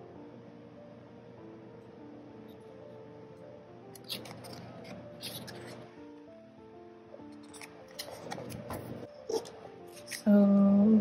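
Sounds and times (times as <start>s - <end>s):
soft piano music: 0.0s - 11.0s
paper page turning: 3.9s - 5.9s, 7.3s - 10.2s.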